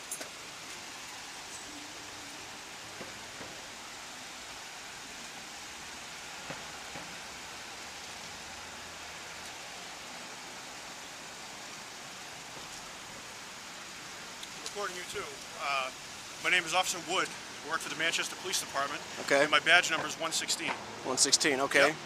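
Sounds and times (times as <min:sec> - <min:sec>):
street background hiss: 0:00.0 - 0:22.0.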